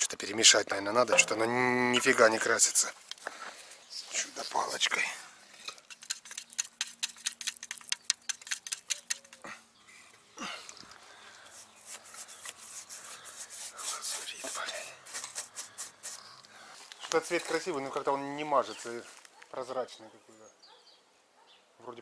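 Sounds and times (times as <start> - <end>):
stick tapping metal paint can: 1.1 - 1.5, 5.8 - 9.4
paintbrush swishing on wood: 11.5 - 16.4.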